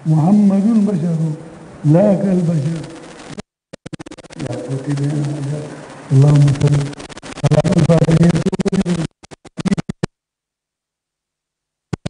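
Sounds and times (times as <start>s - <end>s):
stuttering voice over sound system: 0.0s - 3.0s, 4.3s - 9.8s.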